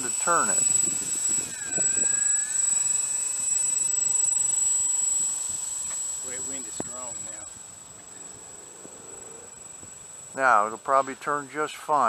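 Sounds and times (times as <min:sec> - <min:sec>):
electric motors whining: 0:00.0 - 0:12.0.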